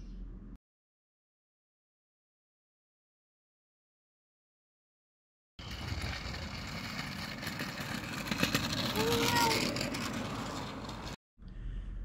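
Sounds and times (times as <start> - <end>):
low rumble: 5.6 - 12.0
outdoor background noise: 5.6 - 12.0.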